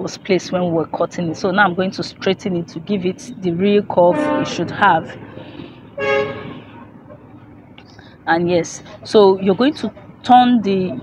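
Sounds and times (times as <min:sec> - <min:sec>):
short horn-like toot: 0:04.0 - 0:04.8, 0:06.0 - 0:06.7.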